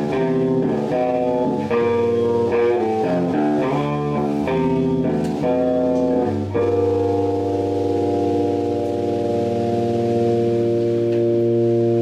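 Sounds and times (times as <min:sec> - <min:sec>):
rock band holding final chord: 0:00.0 - 0:12.0.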